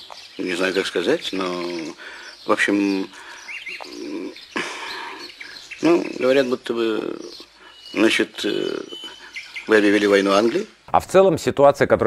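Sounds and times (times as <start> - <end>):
small birds chirping: 0.0 - 11.6.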